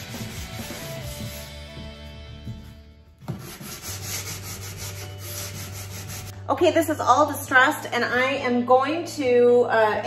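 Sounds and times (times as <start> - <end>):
sanding block rubbing painted wood: 0.0 - 1.7, 3.3 - 6.3.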